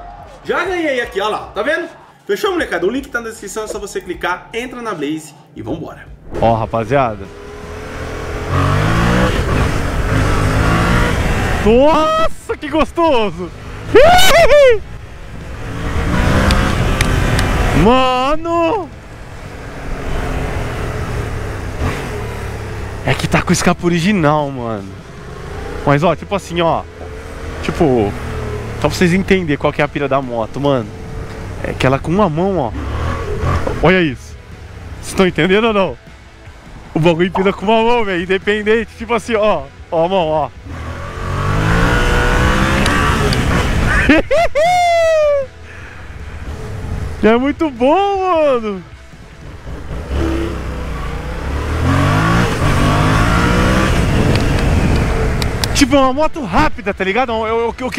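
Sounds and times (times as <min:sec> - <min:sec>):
wind and road noise: 0:00.0 - 0:57.9
motorcycle engine humming: 0:06.1 - 0:57.9
man's falsetto cry: 0:13.9 - 0:14.8, 0:44.4 - 0:45.6
motorcycle engine running: 0:48.9 - 0:56.0.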